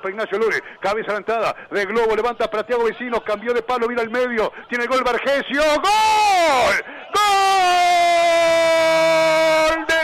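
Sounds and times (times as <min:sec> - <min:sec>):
commentator rapid speech: 0:00.0 - 0:10.0.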